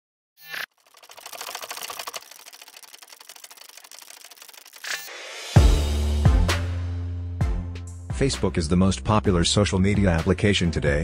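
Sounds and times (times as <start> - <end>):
rapid clicks: 0.7 - 5.1.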